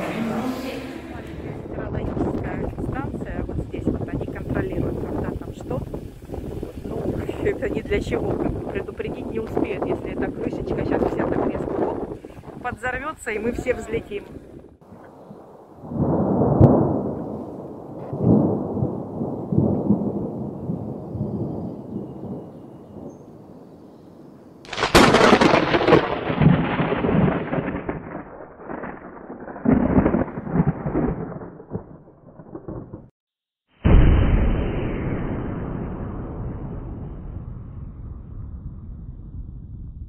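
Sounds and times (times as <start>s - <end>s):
wind buffeting microphone: 0.4s - 23.8s.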